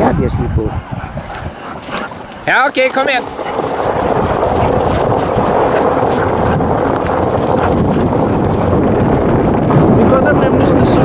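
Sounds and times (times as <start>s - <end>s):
wind on microphone: 0.0s - 11.0s
rig rolling over gravel road: 2.0s - 11.0s.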